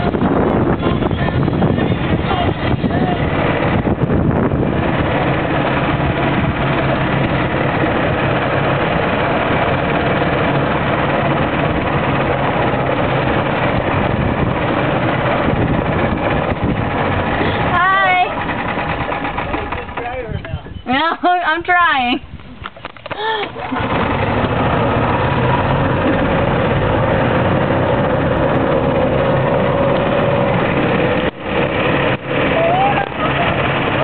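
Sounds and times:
loud rushing noise: 0.0s - 20.1s, 23.6s - 34.0s
golf cart motor running: 0.0s - 21.7s, 22.3s - 34.0s.

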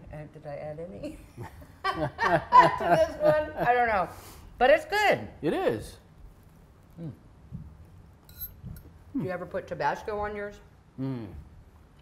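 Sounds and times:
soft low hums: 6.0s - 9.4s
person saying mm: 7.0s - 7.3s, 11.0s - 11.5s
fork clinking on a plate: 8.3s - 8.9s.

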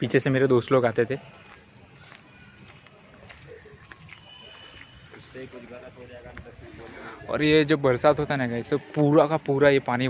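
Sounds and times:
footsteps on wet pavement: 0.1s - 6.6s, 8.1s - 10.0s.

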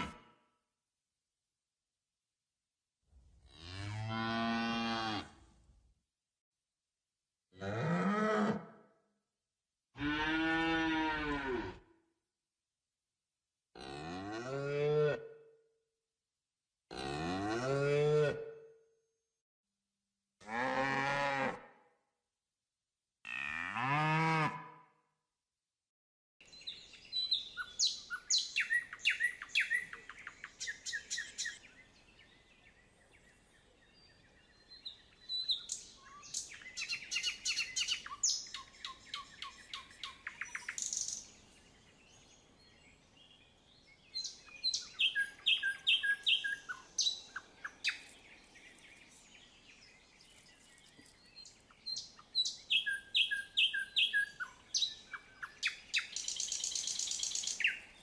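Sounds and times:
songbird chirping and trilling: 26.4s - 58.0s.

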